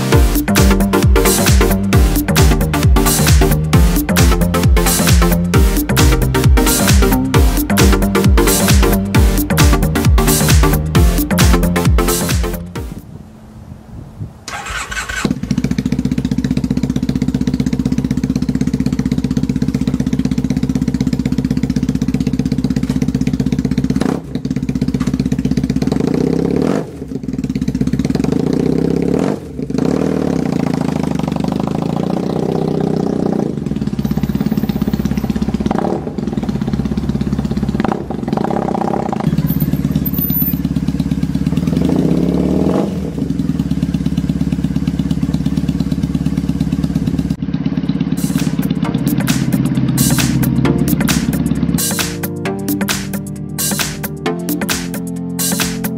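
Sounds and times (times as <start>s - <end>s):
motorcycle engine starting and idling: 0.0s - 13.0s, 14.5s - 55.9s
engine throttle blips: 14.5s - 55.9s.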